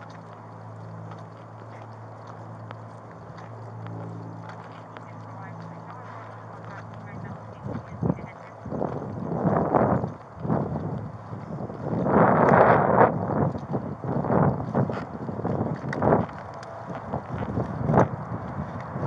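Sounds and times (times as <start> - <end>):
steady low hum: 0.0 - 19.0
crackly police radio voices: 0.1 - 9.0.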